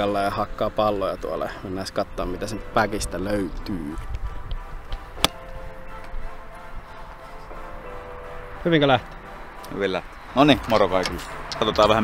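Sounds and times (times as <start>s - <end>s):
background music with sustained tones: 0.0s - 12.0s
golf club striking ball: 5.0s - 5.5s.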